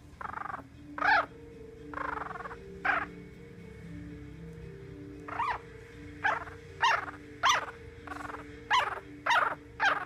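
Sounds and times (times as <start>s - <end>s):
puppy squealing: 0.2s - 3.2s, 5.3s - 5.6s, 6.2s - 10.0s
puppy grunting: 6.2s - 10.0s.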